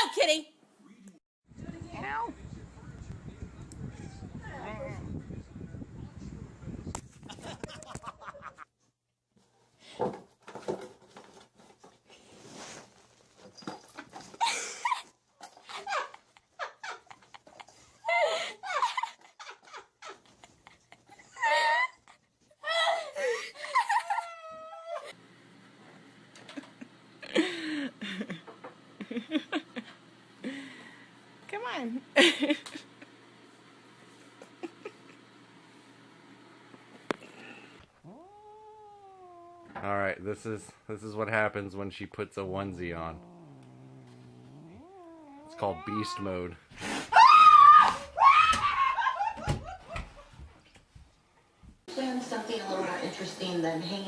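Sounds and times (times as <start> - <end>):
small pet whining: 37.5 - 39.8, 43.1 - 46.4
cat meowing: 38.0 - 39.8, 43.1 - 46.4.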